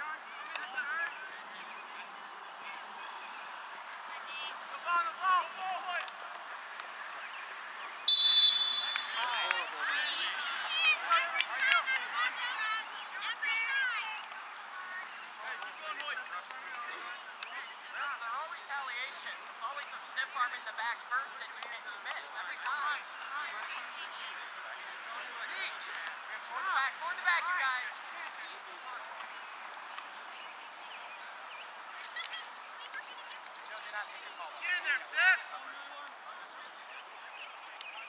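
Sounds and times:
distant players shouting: 0.0 - 7.2, 8.1 - 30.2.

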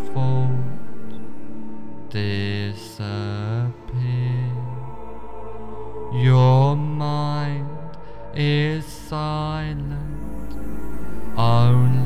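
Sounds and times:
meditation music with chant-like tones: 0.0 - 12.0.

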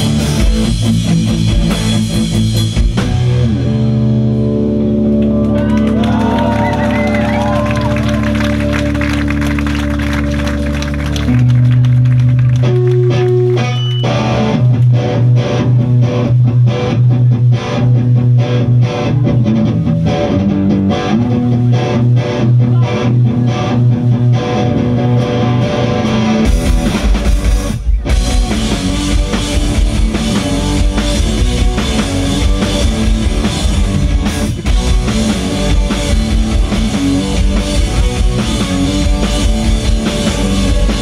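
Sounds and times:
distorted electric guitars: 0.0 - 41.0.

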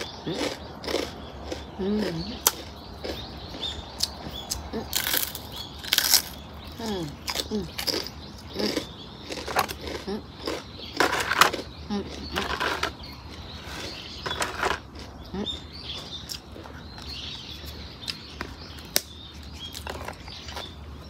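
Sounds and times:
rice cracker crunching and chewing: 0.0 - 20.9
small birds chirping: 0.0 - 21.0.

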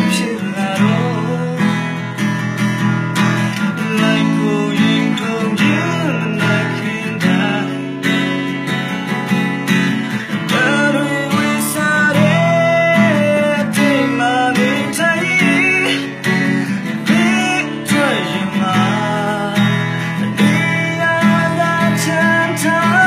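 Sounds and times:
man singing: 0.0 - 2.3, 3.4 - 8.8, 10.0 - 23.0
acoustic guitar strumming: 0.0 - 23.0.

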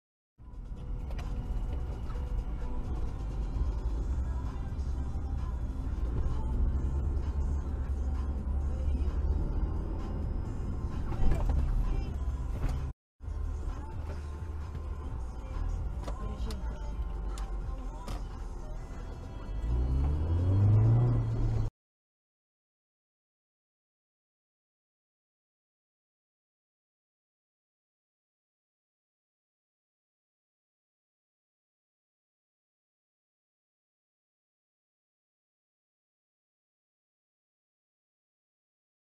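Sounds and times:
car engine and road rumble: 0.4 - 21.7
faint music: 0.4 - 21.7.

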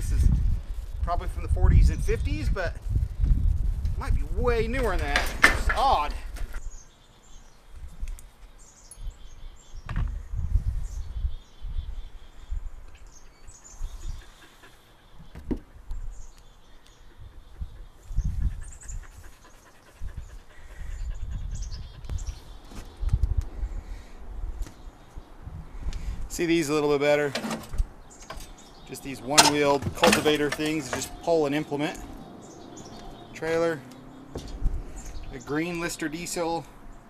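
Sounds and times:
low rumbling noise gusts: 0.0 - 6.8, 15.7 - 37.0
small birds chirping: 0.0 - 37.0.

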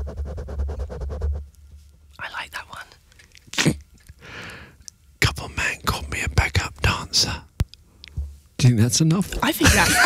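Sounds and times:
man whispering rap: 2.2 - 3.8, 5.2 - 7.5
lip and mouth clicks: 3.1 - 4.2
breathy hiss: 4.2 - 4.9.

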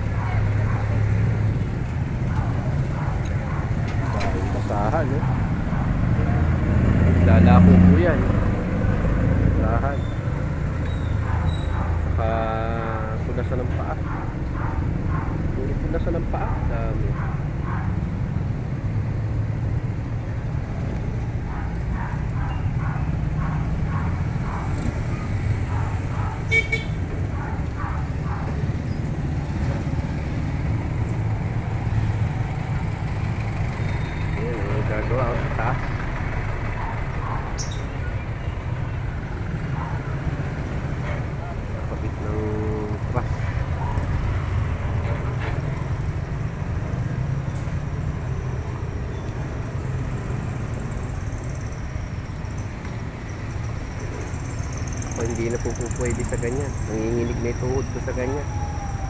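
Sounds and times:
traffic engine rumble: 0.0 - 59.0
short horn tone: 26.5 - 27.0.

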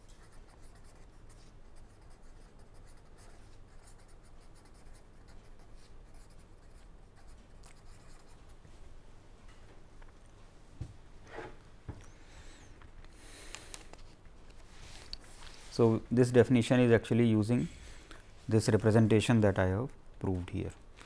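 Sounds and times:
faint low hum: 0.0 - 21.0
pen scratching on paper: 0.1 - 8.4.

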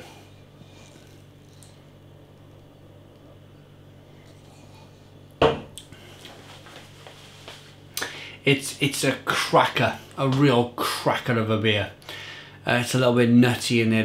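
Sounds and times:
glass set down on hard surface: 5.4 - 5.7.

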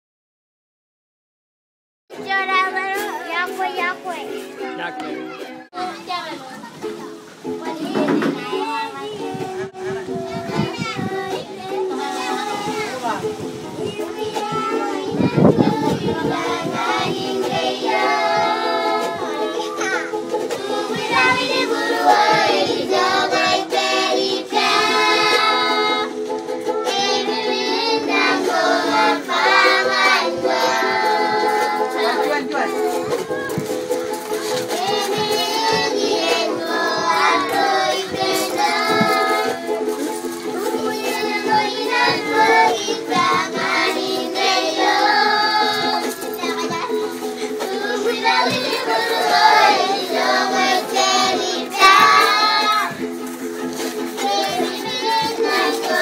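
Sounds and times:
ukulele strumming: 2.1 - 56.0
children singing: 2.2 - 56.0.

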